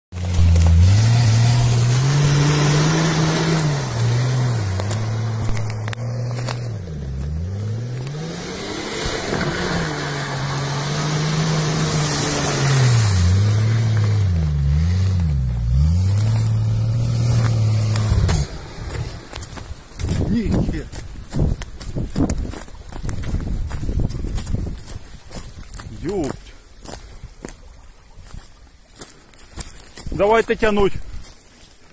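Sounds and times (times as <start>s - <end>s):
engine revving in mud: 0.1s - 21.6s.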